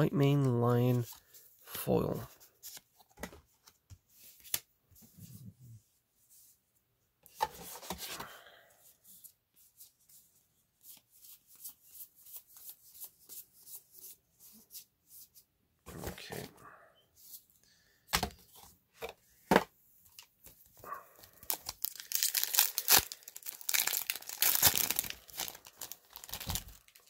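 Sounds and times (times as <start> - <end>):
cards rustling: 20.1 - 27.0.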